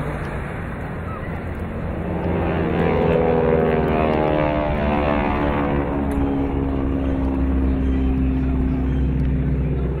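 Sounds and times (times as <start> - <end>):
propeller aircraft engine droning: 0.0 - 10.0.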